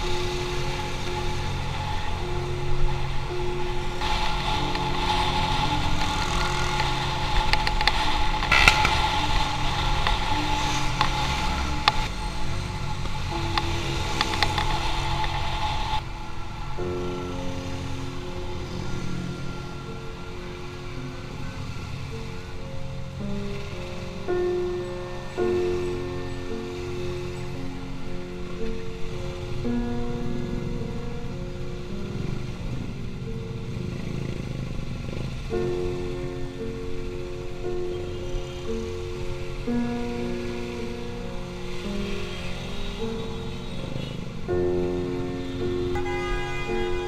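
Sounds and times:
background music with held notes: 0.0s - 47.0s.

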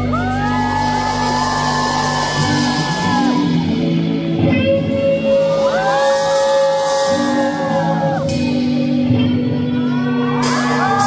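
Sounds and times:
electric guitar notes sliding up: 0.0s - 11.0s
rock band playing live: 0.0s - 11.0s.

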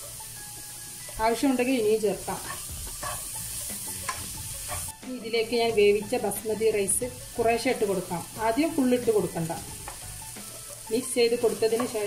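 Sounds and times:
vegetables sizzling in a wok: 0.0s - 12.0s
spatula scraping pan: 2.3s - 5.0s.

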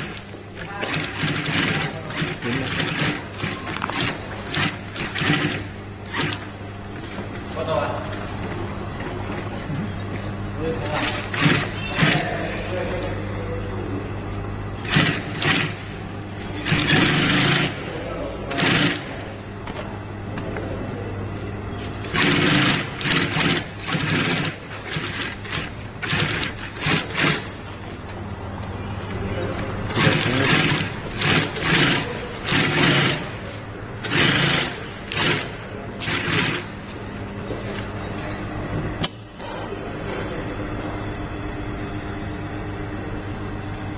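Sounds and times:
sewing machine stitching: 0.0s - 6.5s, 10.8s - 12.5s, 14.8s - 17.9s, 18.5s - 19.2s, 22.0s - 27.6s, 29.9s - 33.4s, 34.0s - 36.8s
sewing machine motor humming: 0.0s - 7.8s, 10.6s - 13.5s, 14.6s - 19.3s, 21.8s - 28.2s, 29.4s - 37.9s.

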